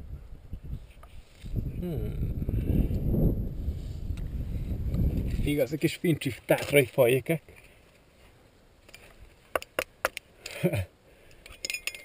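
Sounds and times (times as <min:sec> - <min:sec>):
carabiners clinking on metal: 0:11.3 - 0:12.0.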